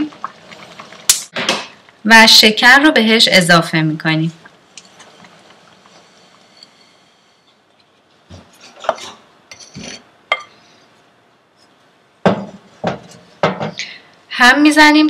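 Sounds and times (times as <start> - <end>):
wooden spoon stirring: 4.4 - 10.4.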